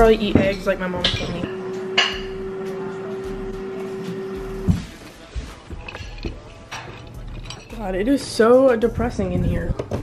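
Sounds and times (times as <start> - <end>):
steady hum on one tone: 0.7 - 4.8.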